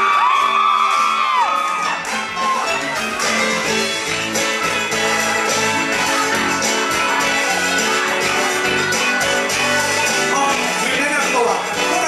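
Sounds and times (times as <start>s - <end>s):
audience whooping: 0.0s - 3.7s
live band playing: 0.0s - 12.0s.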